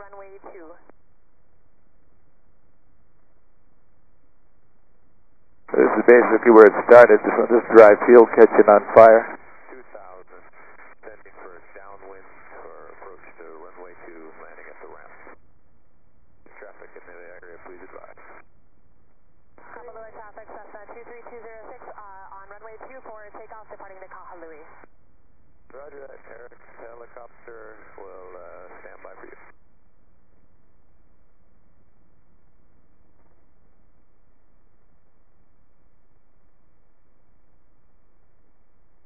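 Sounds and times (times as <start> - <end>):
radio voice transmissions: 5.7 - 15.4, 16.5 - 18.4, 19.6 - 24.8, 25.7 - 29.5.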